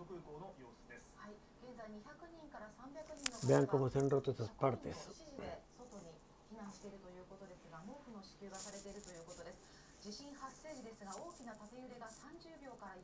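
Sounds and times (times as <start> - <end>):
faint television news speech: 0.0 - 13.0.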